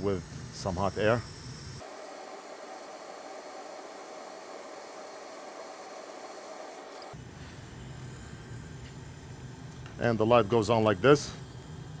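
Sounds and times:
hot air blower hissing: 0.0 - 12.0
low room hum: 0.0 - 12.0.

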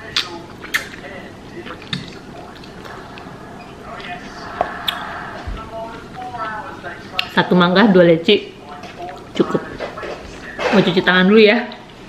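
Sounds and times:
person chewing: 0.1 - 7.3
sharp mouth clicks: 0.2 - 1.0, 4.8 - 5.1.

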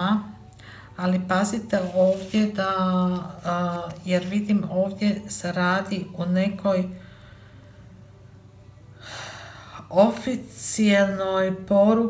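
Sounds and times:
woman speaking: 0.0 - 0.4, 1.0 - 7.0, 9.8 - 12.0
woman breathing in: 7.0 - 8.0.

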